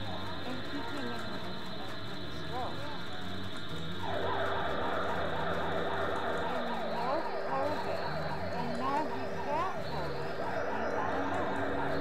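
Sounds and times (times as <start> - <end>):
steady electronic drone: 0.0 - 12.0
synthesiser siren-like warble: 3.7 - 12.0.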